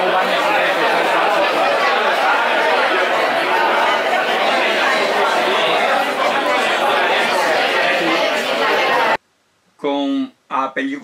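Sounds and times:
hubbub of many people talking: 0.0 - 9.2.

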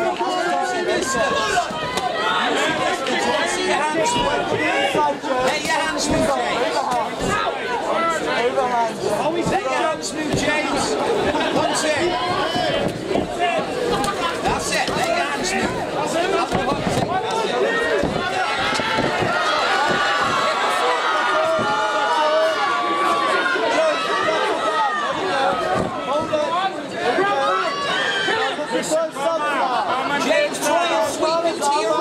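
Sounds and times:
crowd shouting: 0.0 - 32.0.

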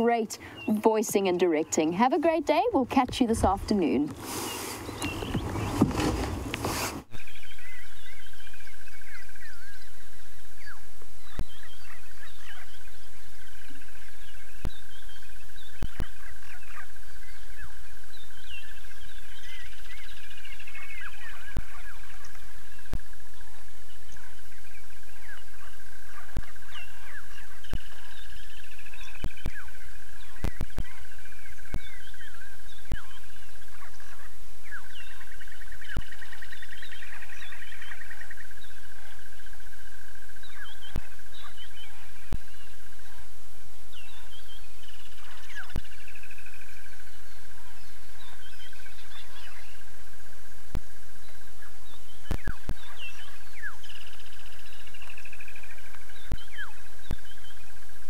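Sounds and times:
birds chirping and calling: 0.0 - 8.4, 51.6 - 57.6
constant low hum: 0.0 - 58.0.

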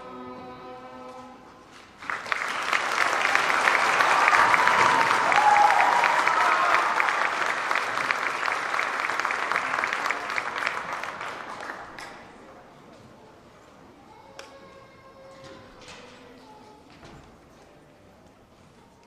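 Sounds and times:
audience applauding: 2.0 - 12.4.

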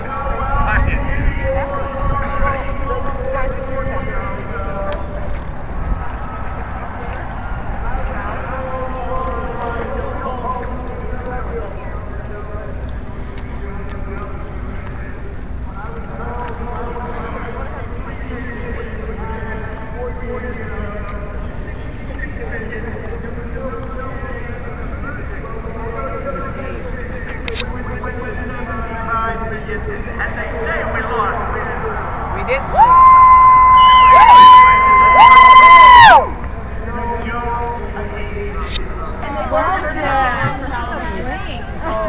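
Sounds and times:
murmur of distant voices: 0.0 - 42.0.

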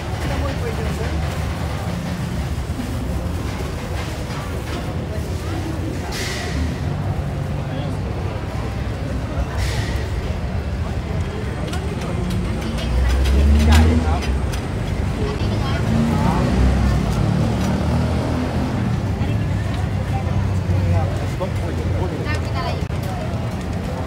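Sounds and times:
crowd chatter: 0.0 - 24.0
engine rumble: 0.0 - 24.0.

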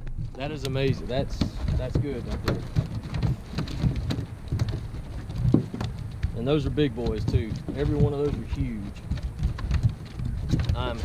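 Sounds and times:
dull thumps: 0.0 - 11.0.

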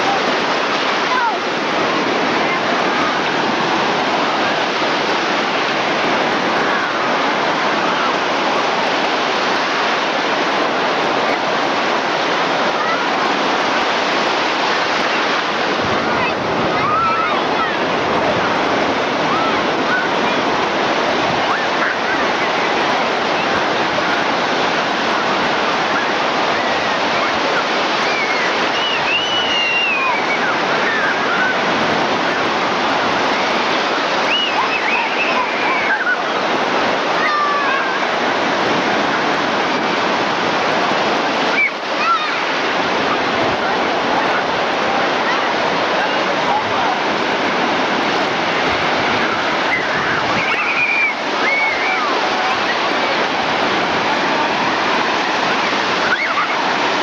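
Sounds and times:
ocean surf breaking: 0.0 - 57.0.

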